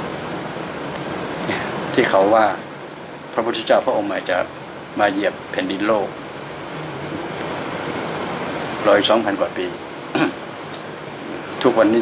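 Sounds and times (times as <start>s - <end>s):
steady background hiss: 0.0s - 12.0s.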